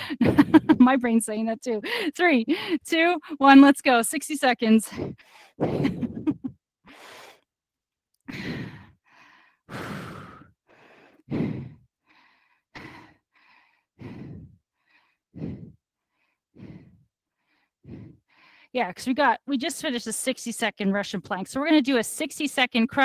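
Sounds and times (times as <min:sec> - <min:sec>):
woman laughing: 0:00.0 - 0:01.1, 0:05.6 - 0:06.6
woman breathing hard: 0:04.9 - 0:06.2, 0:06.9 - 0:07.5, 0:08.3 - 0:18.7.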